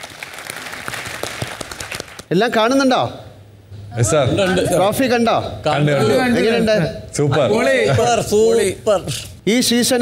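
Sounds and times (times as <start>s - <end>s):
audience applauding: 0.0s - 2.3s.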